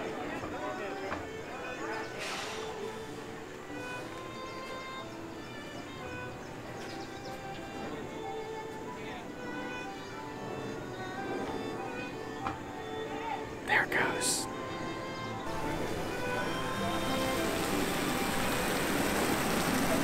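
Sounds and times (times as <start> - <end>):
faint crowd voices: 0.0 - 20.0
fiddle music over loudspeaker: 0.0 - 20.0.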